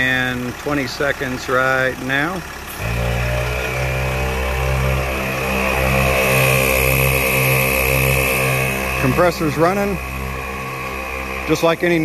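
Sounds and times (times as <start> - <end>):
air compressor running: 2.4 - 12.0.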